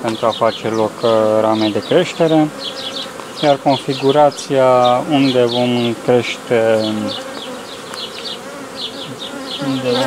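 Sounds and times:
honeybees humming: 0.0 - 10.0.

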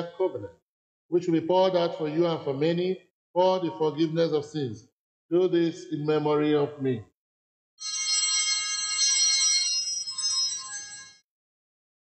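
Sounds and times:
altar bells jangling: 7.8 - 11.2.

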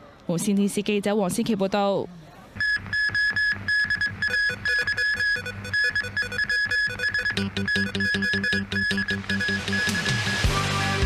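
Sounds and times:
news theme synth music: 2.6 - 11.0.

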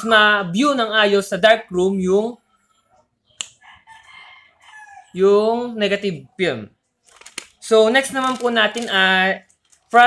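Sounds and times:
faint rooster crowing: 2.5 - 5.2.

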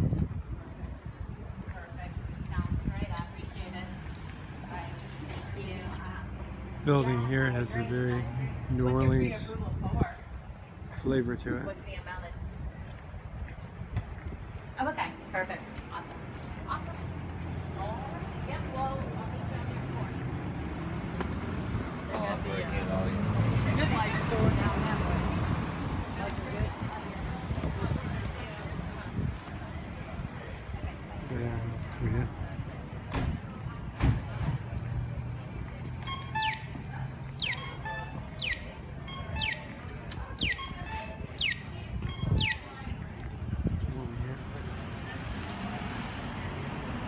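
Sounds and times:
vehicle engine hum passing: 0.8 - 10.8, 14.1 - 47.0
crossing signal chirping: 36.0 - 42.8.

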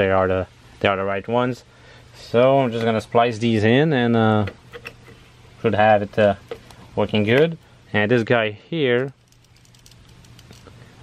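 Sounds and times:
low steady hum: 0.0 - 11.0
plastic connectors clicking: 9.0 - 10.8.

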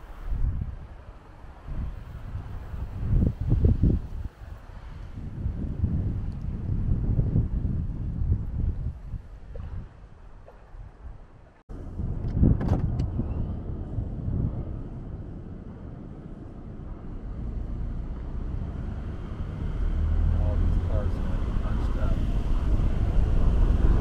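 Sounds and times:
car road and wind noise: 0.0 - 24.0.

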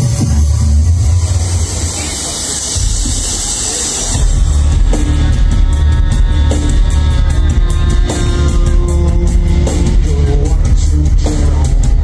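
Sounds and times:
deep bass drone: 0.0 - 12.0
live industrial music: 0.0 - 12.0
harsh hissing noise wash: 0.3 - 10.0.

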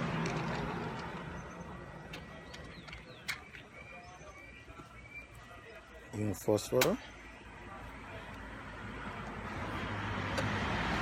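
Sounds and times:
low rumble of passing vehicle: 0.0 - 3.3, 7.0 - 11.0
faint bird chirps: 1.3 - 5.9.

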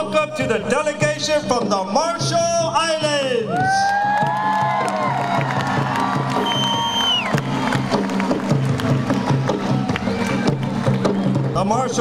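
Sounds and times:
crowd cheering: 3.4 - 11.4
music with repeating beat: 4.0 - 12.0.

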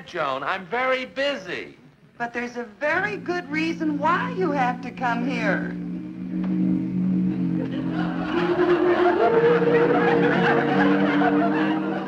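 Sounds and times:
orchestral held notes: 2.8 - 12.0
audience laughter: 7.2 - 12.0.

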